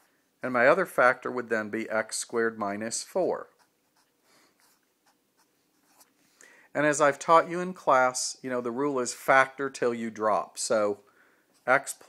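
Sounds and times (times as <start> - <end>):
marker scratching on paper: 3.4 - 6.1.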